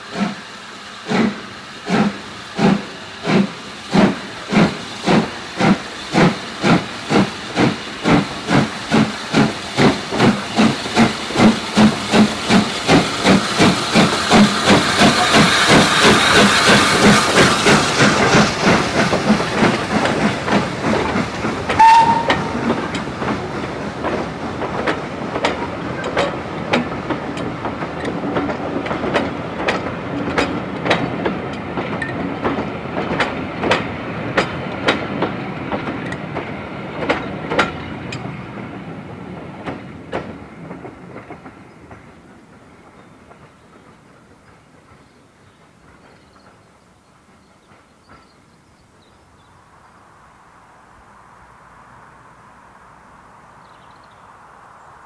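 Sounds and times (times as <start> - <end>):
hiss of steam: 0.0 - 48.6
steam locomotive exhaust beats: 0.0 - 49.1
wheels clicking over rail joints: 1.9 - 48.6
brief high tone: 21.8 - 22.6.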